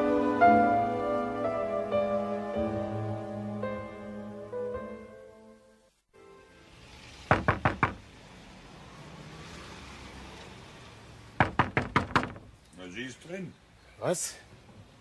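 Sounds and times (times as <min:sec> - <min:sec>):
knocking on a door: 0:07.3 - 0:08.0, 0:11.4 - 0:12.5.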